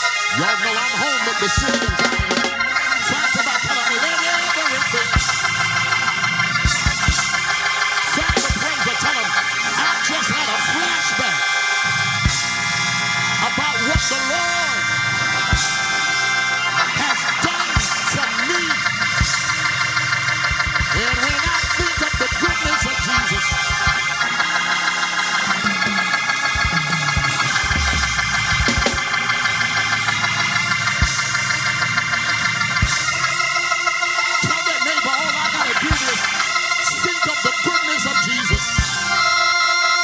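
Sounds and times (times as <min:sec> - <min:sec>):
keyboard sustained chords: 0:00.0 - 0:40.0.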